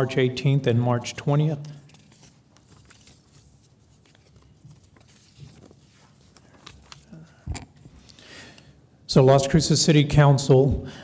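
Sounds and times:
paper sheets rustling: 1.6 - 7.2.

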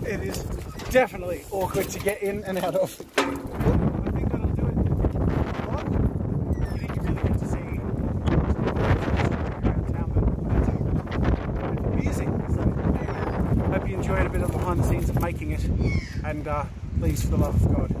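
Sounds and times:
man talking: 0.0 - 4.9, 5.5 - 6.1, 6.7 - 11.0, 11.6 - 18.0
wind buffeting microphone: 0.0 - 18.0.

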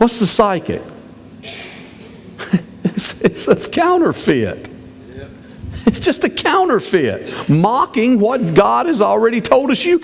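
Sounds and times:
person coughing: 1.4 - 2.7.

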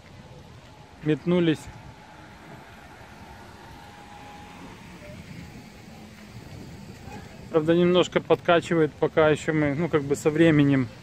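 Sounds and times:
distant traffic: 0.0 - 11.0.

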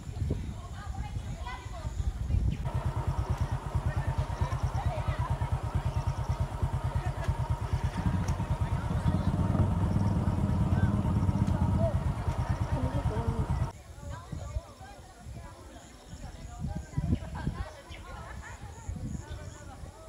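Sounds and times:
faint voices: 0.0 - 20.0
small engine idling: 2.6 - 13.8.

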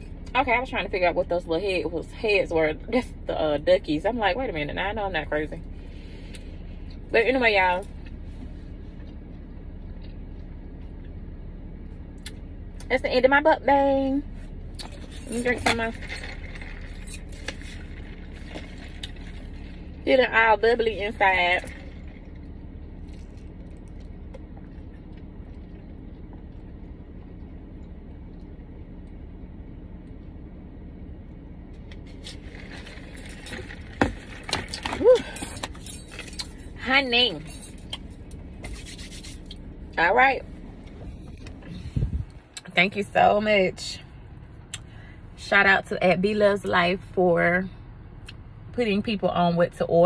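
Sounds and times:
low hum: 0.0 - 50.0
low steady rumble: 0.0 - 50.0
soft scrapes: 38.6 - 39.6.

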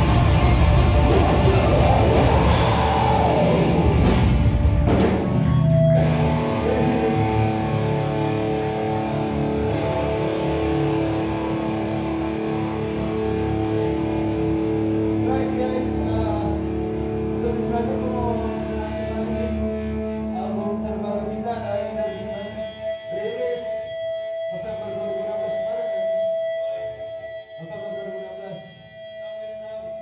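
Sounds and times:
drum kit with cymbal crashes: 0.0 - 5.9
distorted electric guitars: 0.0 - 30.0.

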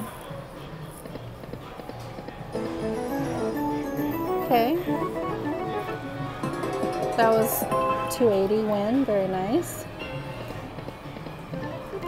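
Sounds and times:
slot machine reels spinning: 2.6 - 8.4
electronic chime notes: 2.6 - 8.5.

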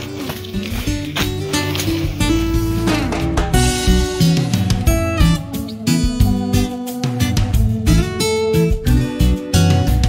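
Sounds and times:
acoustic guitar background music: 0.0 - 10.0.

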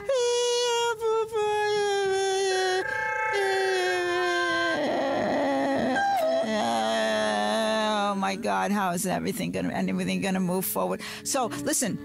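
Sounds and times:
woman wailing wordlessly: 0.0 - 8.7.

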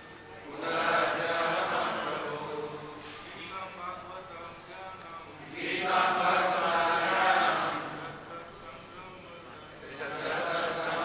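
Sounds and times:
group chanting in unison: 0.5 - 3.1, 5.5 - 8.2, 9.9 - 11.0.

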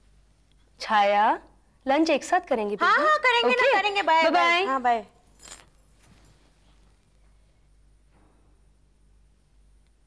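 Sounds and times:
metallic jingle of bag fittings: 5.2 - 6.1.

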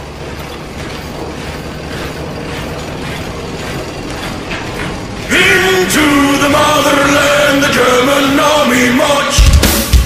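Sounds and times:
machine rattling and clanking: 0.0 - 9.9.

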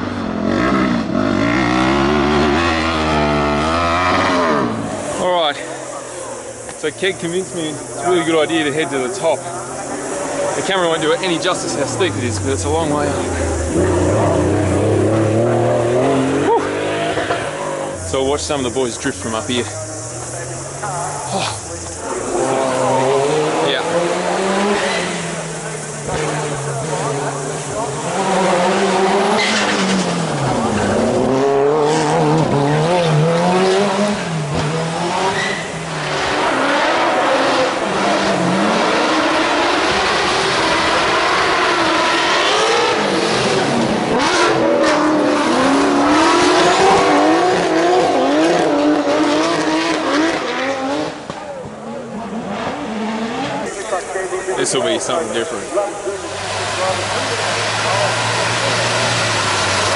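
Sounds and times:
car engine revving hard: 0.0 - 59.9
tyres squealing: 35.1 - 37.8.

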